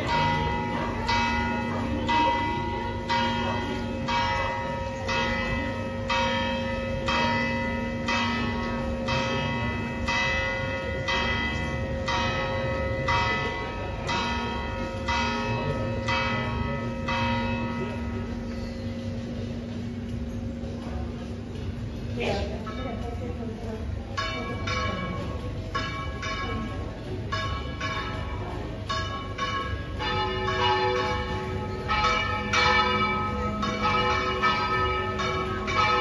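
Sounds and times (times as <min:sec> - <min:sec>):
church bells ringing: 0:00.0 - 0:36.0.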